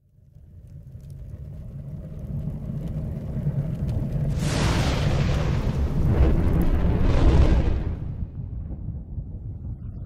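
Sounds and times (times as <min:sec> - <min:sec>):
low rumbling fire: 0:00.0 - 0:10.0
burst of flame: 0:02.7 - 0:08.6.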